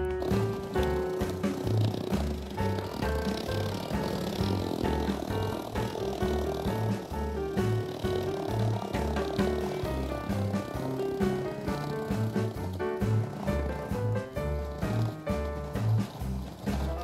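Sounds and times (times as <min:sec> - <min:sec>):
background music with bass beat: 0:00.0 - 0:17.0.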